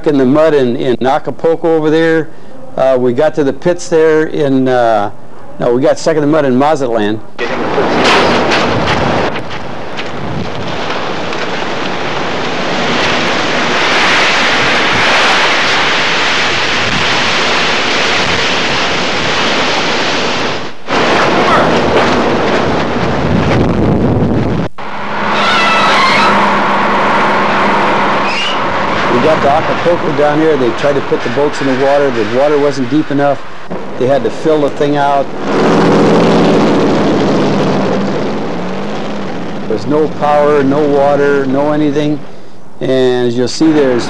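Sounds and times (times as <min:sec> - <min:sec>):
truck engine revving hard: 0:24.8 - 0:42.4
indistinct men's voices: 0:28.5 - 0:35.6, 0:39.6 - 0:44.0.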